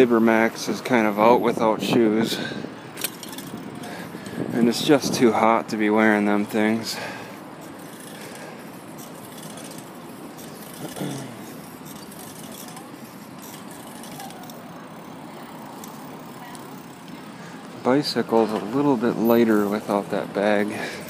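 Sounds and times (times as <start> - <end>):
distant road traffic hum: 0.0 - 21.0.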